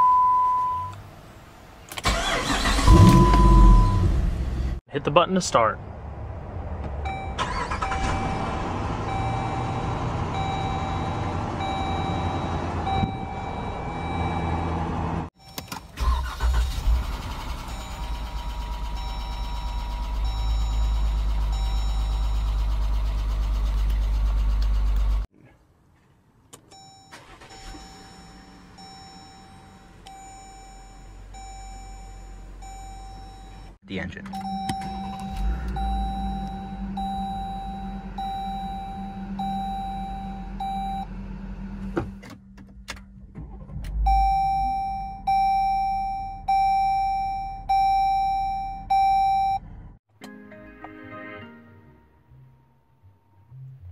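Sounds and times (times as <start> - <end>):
car engine starting and idling: 0.0 - 25.3, 26.4 - 50.1
dashboard chimes: 7.1 - 14.7, 26.7 - 41.0.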